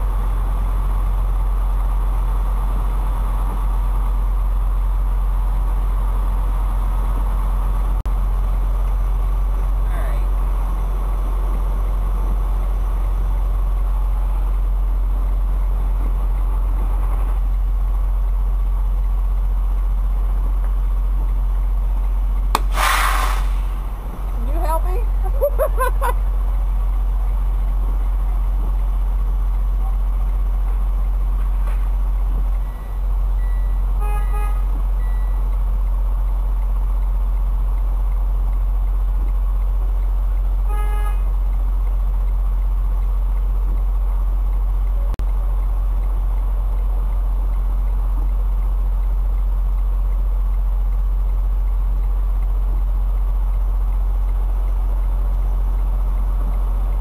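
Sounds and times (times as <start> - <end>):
diesel engine droning: 0.0 - 57.0
vehicle horn toot: 34.0 - 34.8, 40.6 - 41.3.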